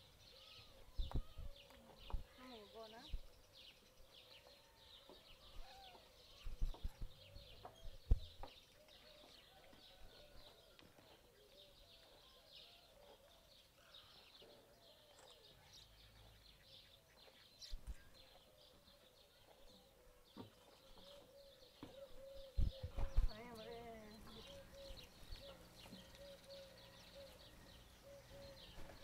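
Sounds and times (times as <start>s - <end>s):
birds chirping and calling: 0.0s - 29.0s.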